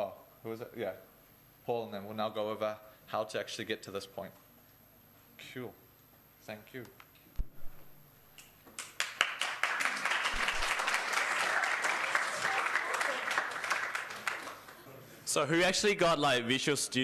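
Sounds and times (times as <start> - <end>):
audience applauding: 8.8 - 14.9.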